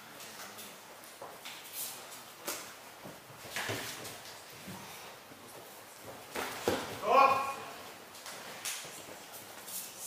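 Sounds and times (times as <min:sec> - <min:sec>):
person shouting: 0:07.0 - 0:07.7.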